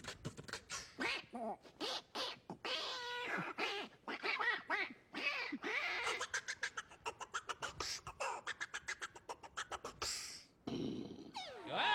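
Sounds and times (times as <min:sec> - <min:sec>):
mouth clicks: 0:00.0 - 0:01.2, 0:06.0 - 0:11.3
beatboxed percussive beat: 0:00.0 - 0:01.3, 0:06.0 - 0:11.2
beatboxing vocal effects: 0:00.0 - 0:02.7, 0:06.0 - 0:11.4.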